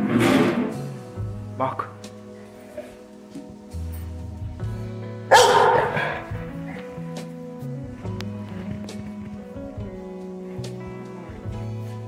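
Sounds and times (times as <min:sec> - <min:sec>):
dog barking loudly: 0:05.3 - 0:06.4.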